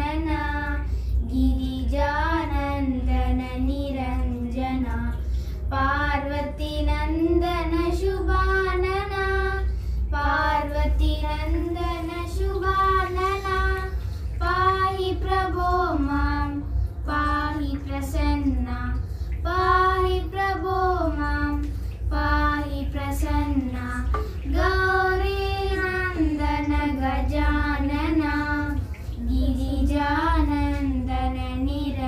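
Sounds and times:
girls singing devotional song: 0.0 - 32.0.

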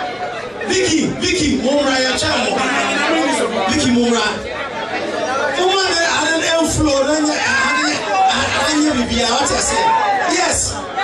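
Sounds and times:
chatter of voices in a hall: 0.0 - 11.0.

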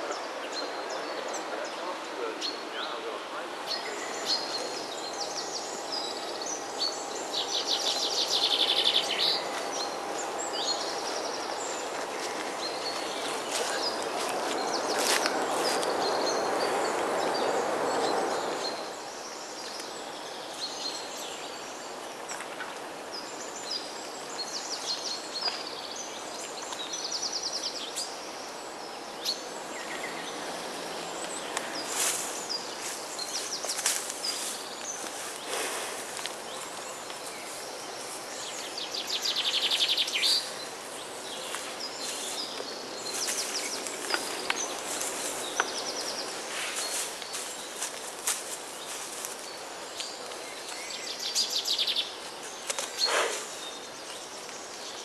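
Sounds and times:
songbirds chirping and whistling: 0.0 - 55.0
loud rushing hiss: 35.3 - 36.2, 53.0 - 53.6.

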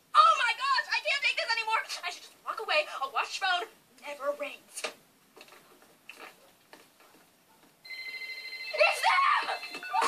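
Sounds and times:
telephone ringing: 7.8 - 10.0.

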